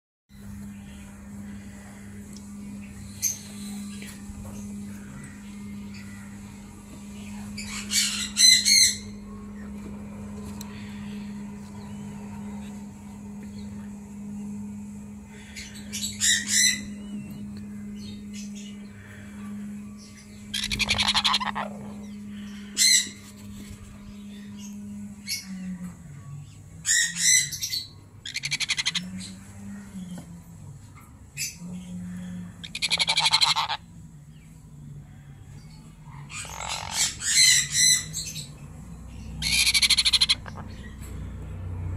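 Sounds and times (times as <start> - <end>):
steady low hum: 0.3 - 41.9
parrots squawking: 7.3 - 9.2, 15.4 - 17.0, 20.3 - 23.2, 26.8 - 30.1, 31.4 - 33.9, 36.1 - 38.6, 39.2 - 41.0.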